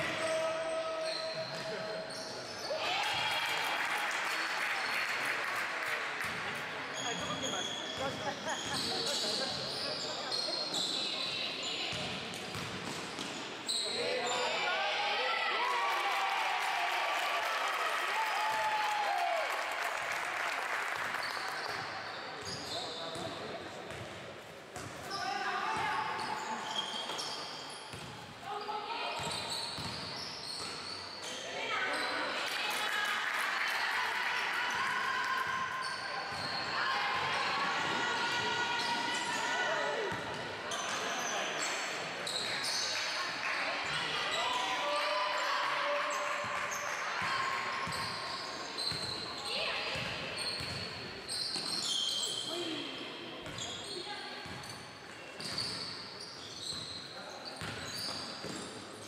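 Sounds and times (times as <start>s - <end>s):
sneakers squeaking: 0.1s - 3.2s, 6.2s - 14.7s, 21.2s - 32.4s, 35.4s - 44.8s, 46.1s - 59.0s.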